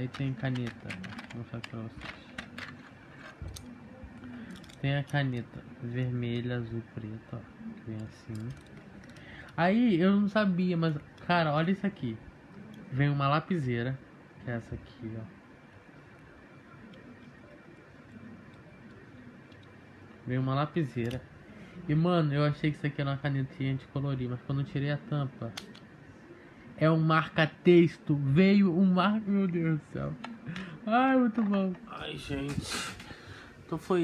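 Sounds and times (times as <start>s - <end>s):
plastic pens clicking and tapping: 0.0s - 5.4s
low room hiss: 0.0s - 34.0s.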